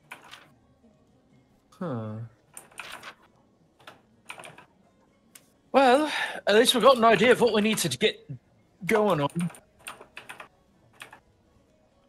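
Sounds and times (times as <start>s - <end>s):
computer keyboard typing: 2.6s - 3.2s, 3.8s - 4.7s, 9.3s - 11.2s.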